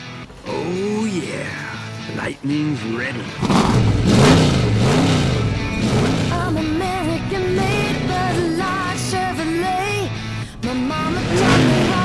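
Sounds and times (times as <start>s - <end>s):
rock music: 0.0s - 12.0s.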